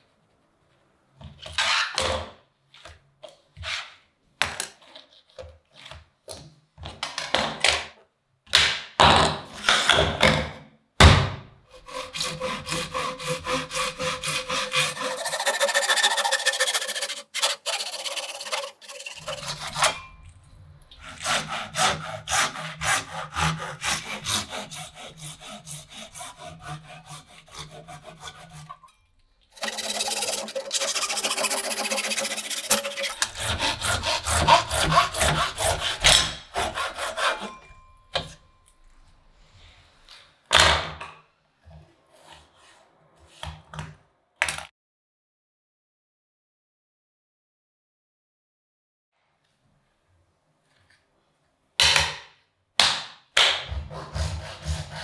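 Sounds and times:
hand saw cutting plastic pipe: 0:11.7 - 0:20.1, 0:20.9 - 0:29.0, 0:29.6 - 0:38.4, 0:53.5 - 0:55.0.

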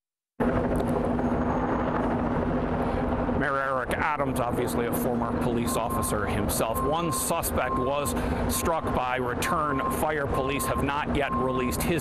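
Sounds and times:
engine drone: 0:00.4 - 0:12.0.

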